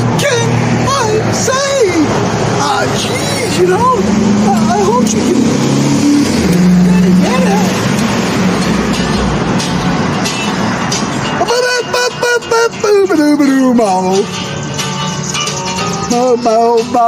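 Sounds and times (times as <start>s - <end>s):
vehicle engine passing: 0.0s - 17.0s
music with singing: 6.6s - 17.0s.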